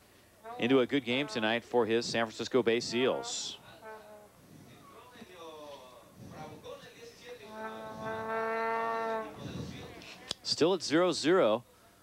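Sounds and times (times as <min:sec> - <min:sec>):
horn long steady note: 0:00.4 - 0:01.9, 0:02.7 - 0:04.6, 0:07.4 - 0:10.2.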